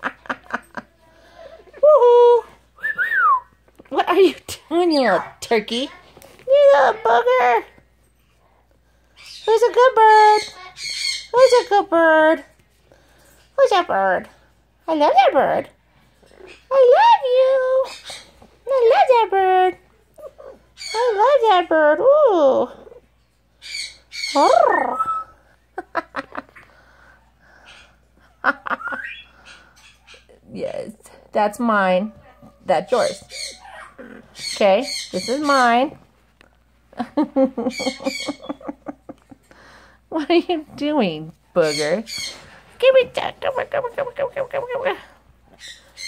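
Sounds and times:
parrot squawking: 0:10.2 - 0:11.7, 0:23.6 - 0:25.3, 0:28.7 - 0:30.3, 0:32.9 - 0:35.8, 0:37.7 - 0:38.7, 0:43.4 - 0:46.0.

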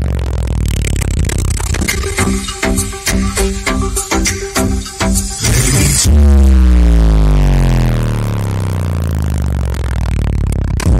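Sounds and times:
bass-heavy electronic music: 0:00.0 - 0:10.9
deep bass note sliding down: 0:00.0 - 0:10.9.

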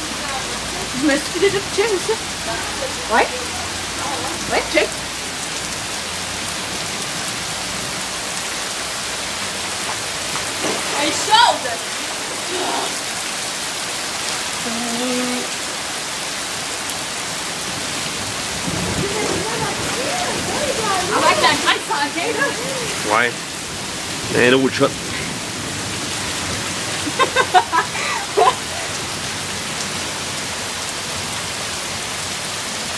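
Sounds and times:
heavy rain falling: 0:00.0 - 0:32.9
brief voices: 0:18.9 - 0:23.4.

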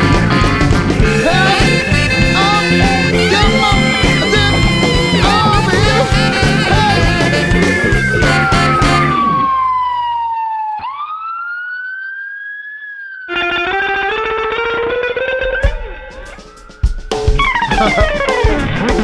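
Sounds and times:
band playing chords: 0:00.0 - 0:09.5, 0:13.3 - 0:19.0
drums: 0:00.0 - 0:09.8, 0:14.5 - 0:19.0
electric guitar note bending: 0:00.0 - 0:09.8, 0:13.3 - 0:19.0.

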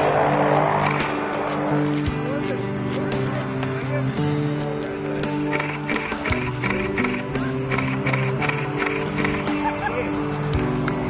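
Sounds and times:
instrumental song with steady beat: 0:00.9 - 0:11.0.

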